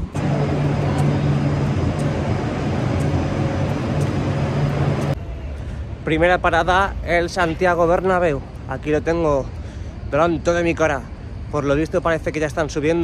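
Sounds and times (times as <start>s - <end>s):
road noise: 0.0s - 13.0s
vehicle engine hum: 0.0s - 13.0s
faint ticking: 0.4s - 5.2s.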